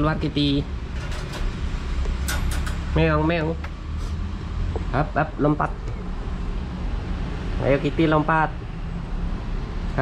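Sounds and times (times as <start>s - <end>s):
pet cage latch clicks and rattles: 1.0s - 1.6s, 2.2s - 3.0s.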